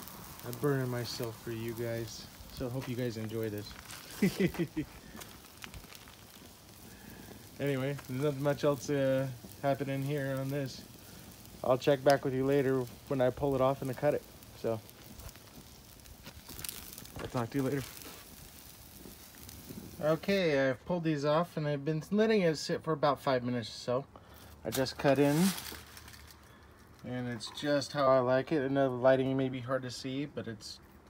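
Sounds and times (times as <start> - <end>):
meat sizzling on a grill: 0.0 - 21.4, 23.2 - 30.2
man laughing: 4.0 - 5.1.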